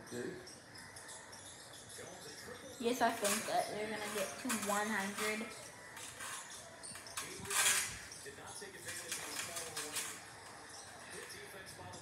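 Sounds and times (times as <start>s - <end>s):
faint basketball commentary: 0.0s - 12.0s.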